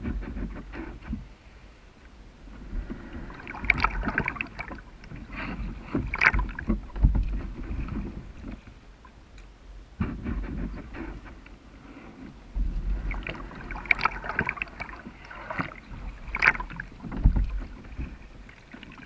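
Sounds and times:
paddle strokes in water: 0.0s - 1.7s, 2.4s - 9.2s, 9.9s - 19.0s
water sloshing: 2.3s - 9.3s, 10.0s - 19.0s
knocks against kayak hull: 5.9s - 8.6s, 16.4s - 18.2s.

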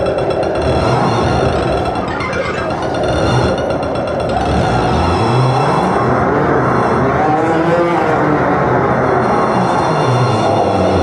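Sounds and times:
experimental electronic music: 0.0s - 11.0s.

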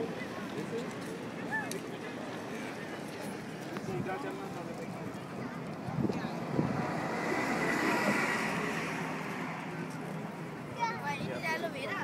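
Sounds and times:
faint crowd chatter: 0.0s - 12.0s
road vehicle passing: 4.5s - 12.0s.

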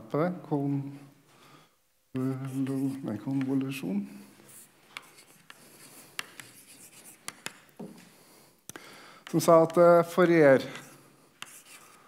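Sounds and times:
chalk tapping on blackboard: 2.2s - 3.8s, 4.4s - 8.0s, 9.2s - 10.0s, 10.6s - 12.0s
chalk scraping on blackboard: 2.3s - 7.7s, 10.6s - 12.0s.

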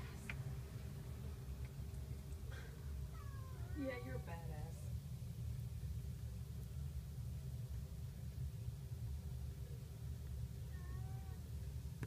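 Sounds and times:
kitten mewing: 2.6s - 4.0s.

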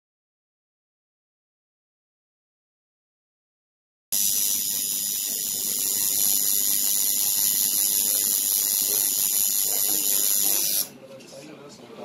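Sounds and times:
tattoo machine buzzing: 4.1s - 10.9s.

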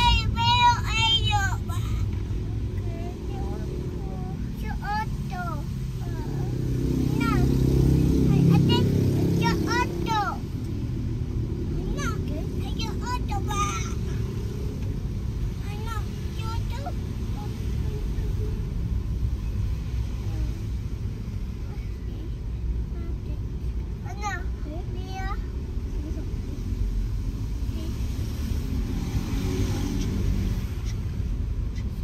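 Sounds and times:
child calling out: 0.0s - 2.1s
car engine and road rumble: 0.0s - 32.0s.

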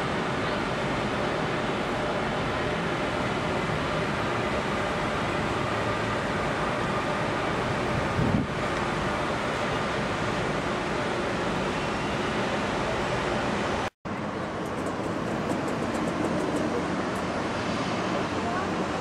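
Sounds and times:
distant traffic: 0.0s - 19.0s
wind on microphone: 7.8s - 8.7s.

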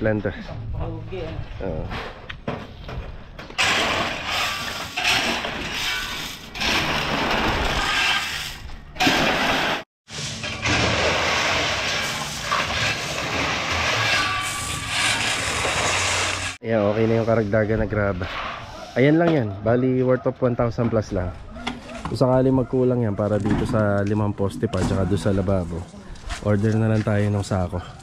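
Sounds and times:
shovels scraping gravel on metal: 3.6s - 17.4s.

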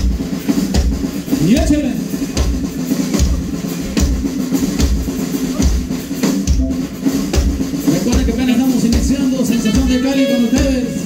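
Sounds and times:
drum kit steady beat: 0.0s - 11.0s
live dance band playing: 0.0s - 11.0s.

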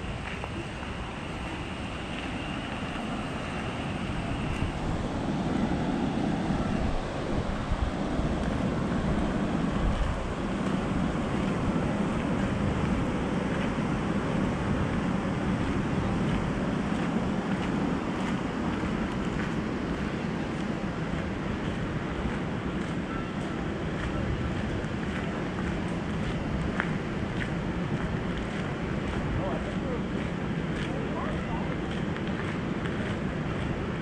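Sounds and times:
river water pouring over weir: 0.0s - 34.0s
wind buffeting microphone: 0.0s - 34.0s.

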